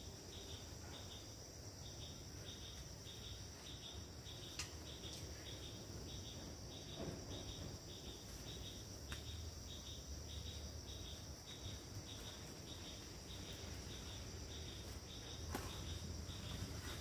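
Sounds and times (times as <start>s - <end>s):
insect chirps: 0.0s - 17.0s
insects buzzing: 0.0s - 17.0s.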